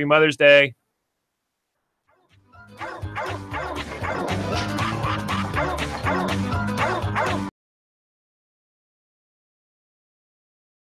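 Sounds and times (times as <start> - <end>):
dogs barking and yipping: 2.7 - 7.5
music with steady beat: 2.7 - 7.5.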